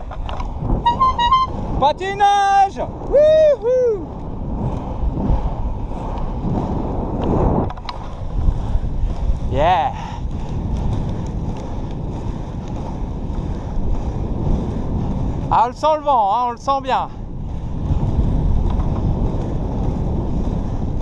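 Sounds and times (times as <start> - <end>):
skating stride clicks: 0.0 - 1.8, 2.5 - 21.0
skate wheels rolling on asphalt: 0.0 - 21.0
wind on microphone: 0.0 - 21.0.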